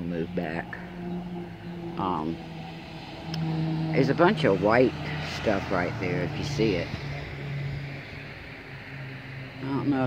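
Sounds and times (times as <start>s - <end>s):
low engine hum: 0.0s - 10.0s.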